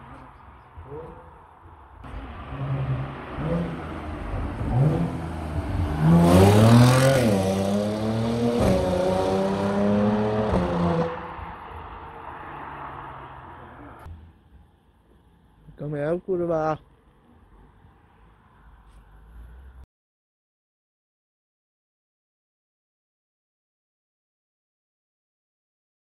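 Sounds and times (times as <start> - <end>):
car accelerating hard past: 2.1 - 14.0.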